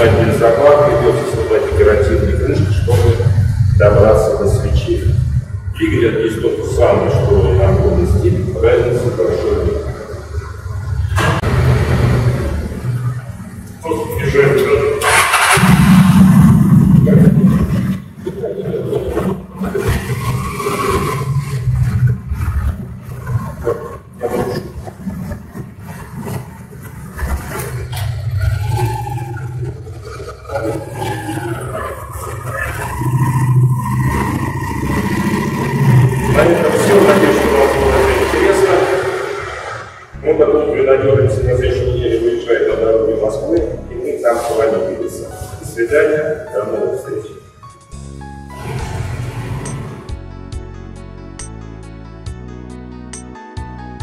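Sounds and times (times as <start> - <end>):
man's voice: 0.0 - 10.2, 13.8 - 15.1, 16.9 - 17.7, 36.2 - 47.5
motorcycle engine running: 15.0 - 39.3.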